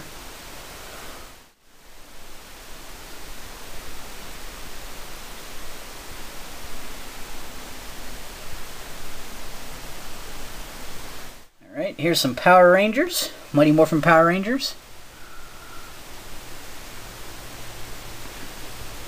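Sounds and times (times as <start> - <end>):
room tone hiss: 0.0 - 19.0.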